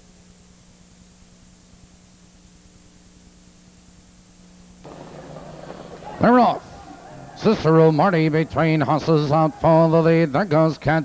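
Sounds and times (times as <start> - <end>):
recording hiss: 0.0 - 11.0
steady low hum: 0.0 - 11.0
crowd and racetrack ambience: 4.8 - 11.0.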